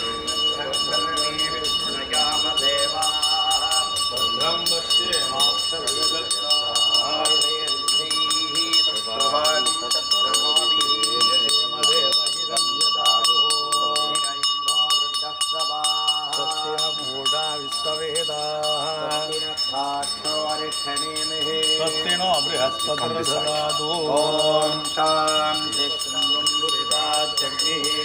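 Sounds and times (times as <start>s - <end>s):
bell rung rapidly: 0.0s - 28.0s
men chanting: 0.0s - 28.0s.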